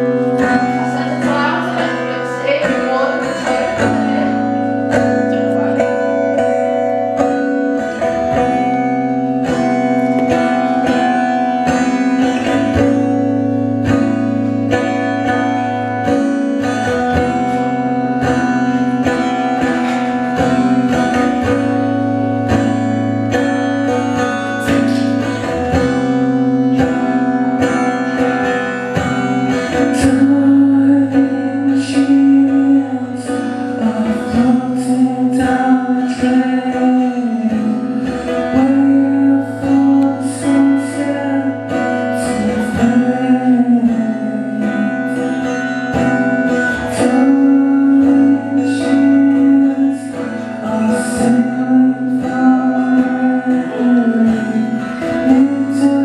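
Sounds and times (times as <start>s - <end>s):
man singing: 0.0s - 28.5s, 29.1s - 56.0s
acoustic guitar strumming chords: 0.0s - 56.0s.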